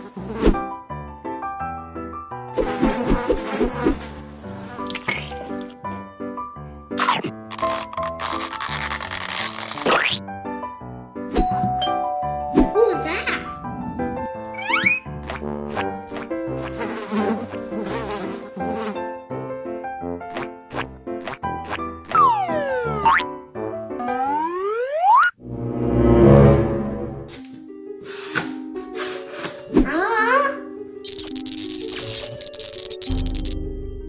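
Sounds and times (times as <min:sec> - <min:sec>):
light background music: 0:00.0 - 0:09.0, 0:10.0 - 0:24.2, 0:25.4 - 0:34.0
fly buzzing: 0:02.6 - 0:05.9, 0:07.0 - 0:10.2, 0:13.4 - 0:19.1, 0:20.3 - 0:23.2, 0:31.0 - 0:33.6.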